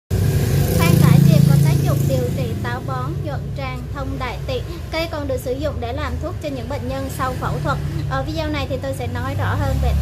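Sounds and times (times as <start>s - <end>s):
engine droning: 0.1s - 10.0s
woman talking: 0.7s - 10.0s.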